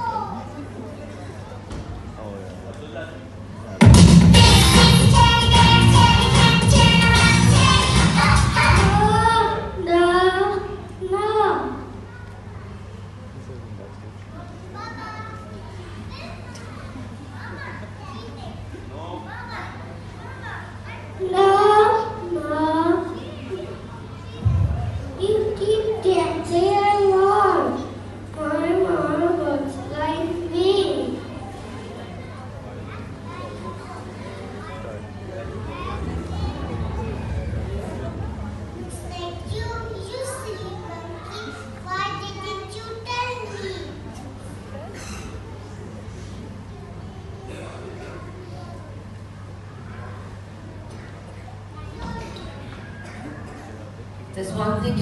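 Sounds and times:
children chattering: 0.0 - 2.5, 4.5 - 55.0
steady low hum: 21.2 - 31.5, 34.0 - 43.0.

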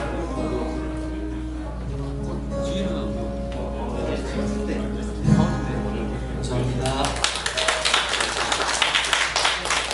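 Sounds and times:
audience applauding: 6.8 - 9.9.

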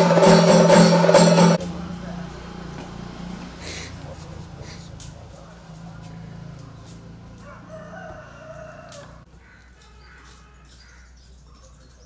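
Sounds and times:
rooster crowing: 7.3 - 10.3.

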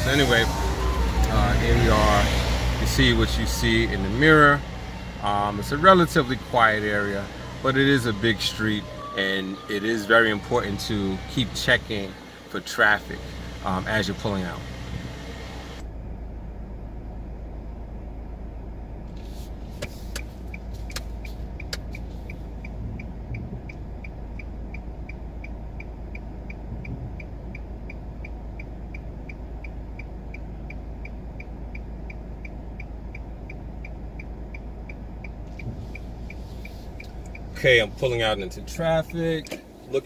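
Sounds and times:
turn signal ticking: 0.0 - 15.9, 17.5 - 40.0
car engine idling: 0.0 - 40.0
sharp clicks: 19.8 - 22.0.

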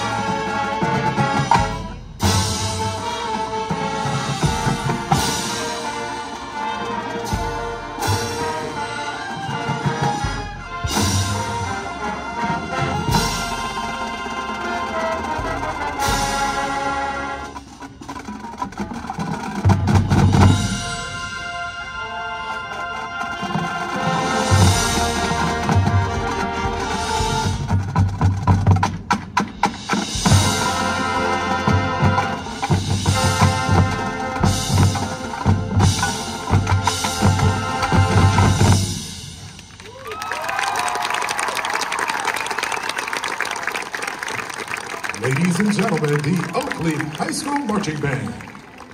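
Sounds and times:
marching band playing: 0.0 - 48.9.

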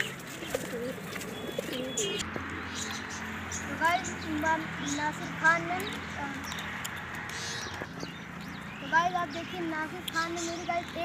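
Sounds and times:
pigeon cooing: 0.0 - 6.4.

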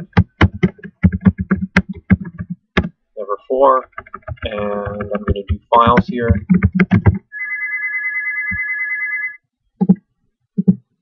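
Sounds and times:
electronic beep tone: 7.3 - 9.4.

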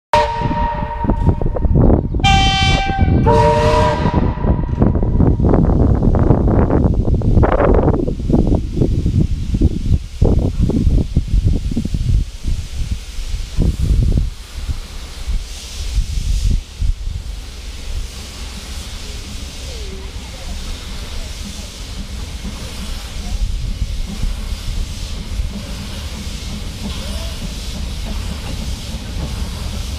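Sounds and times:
steam locomotive whistle blasts: 0.1 - 5.0
faint hiss: 8.1 - 29.9.

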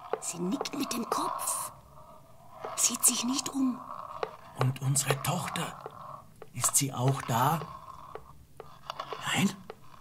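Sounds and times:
person whispering: 0.2 - 1.8, 2.7 - 3.9, 4.5 - 5.9, 9.2 - 9.7.

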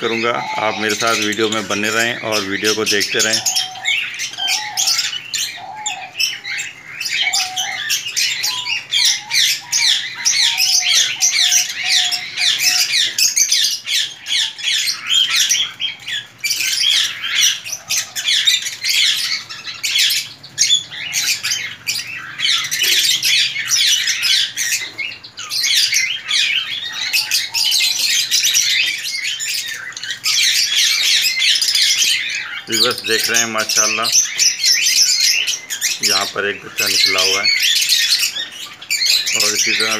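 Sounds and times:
cage birds chirping and chattering: 0.0 - 39.9
lower-pitched bird calls: 0.0 - 39.9.

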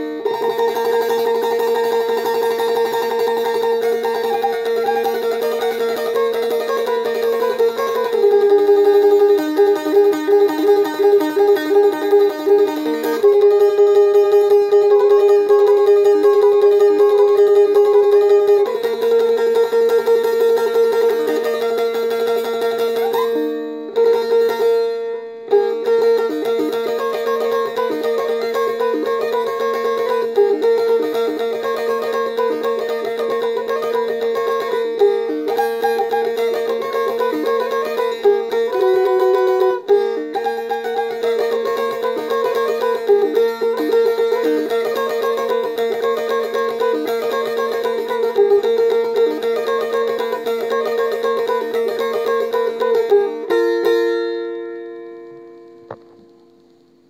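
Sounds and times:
plucked lute melody over drone: 0.0 - 56.8.

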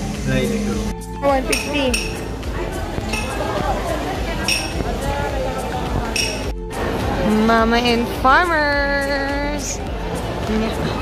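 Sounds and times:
crowd chatter: 0.0 - 11.0
market stall noise: 0.0 - 11.0.

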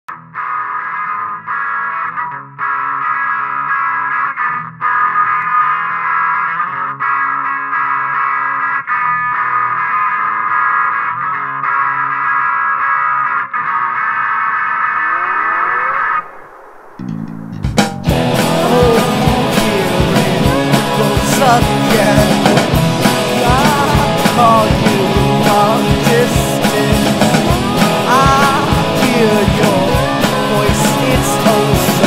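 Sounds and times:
distorted electric guitar chords: 0.1 - 32.0
rising sweep: 14.5 - 32.0.

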